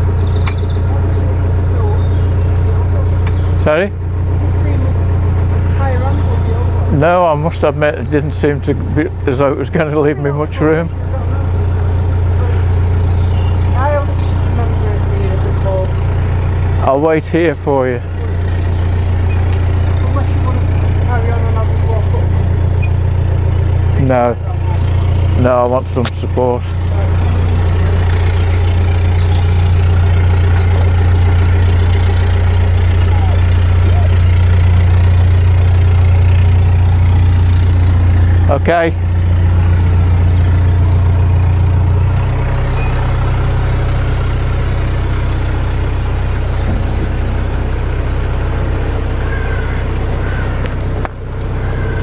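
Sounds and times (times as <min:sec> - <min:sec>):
boat engine humming: 0:00.0 - 0:52.0.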